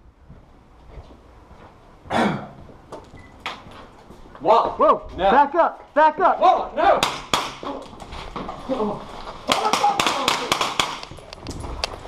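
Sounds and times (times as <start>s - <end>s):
training pistol firing: 7.0s - 7.6s, 9.5s - 11.1s.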